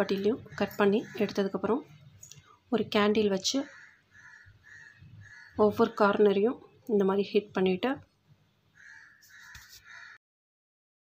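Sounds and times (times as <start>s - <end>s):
faint bird calls: 3.6s - 6.1s, 8.7s - 10.2s.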